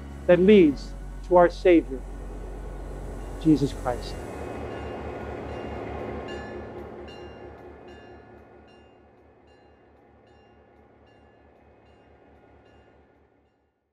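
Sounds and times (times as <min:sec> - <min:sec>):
train rumbling on tracks: 0:00.8 - 0:13.2.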